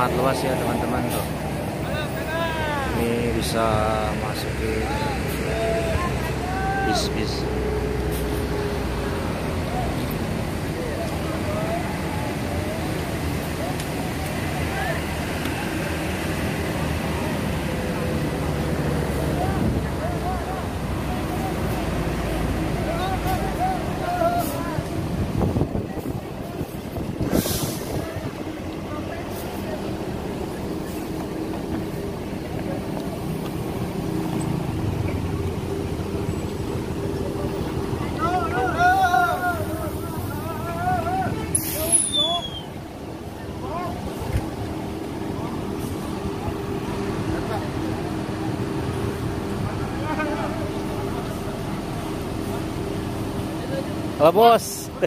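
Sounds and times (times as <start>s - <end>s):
diesel bus engines idling: 0.0s - 55.0s
scattered voices: 0.0s - 55.0s
short hiss: 27.2s - 28.0s.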